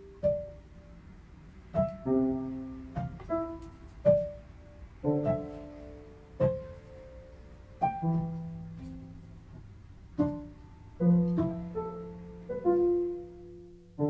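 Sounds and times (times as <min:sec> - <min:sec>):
slow piano music: 0:00.0 - 0:14.0.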